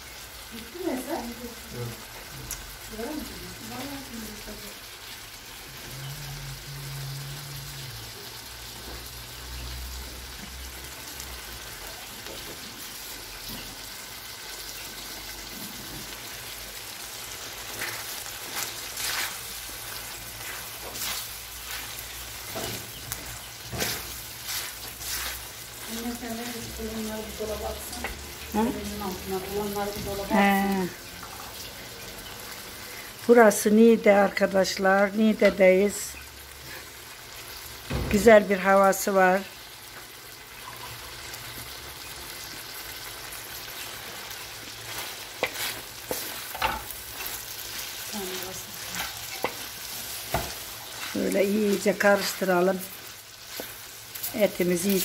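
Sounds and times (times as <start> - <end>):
meat sizzling in a pan: 0.0 - 55.0
wooden spoon scraping a pan: 17.4 - 30.6, 43.8 - 55.0.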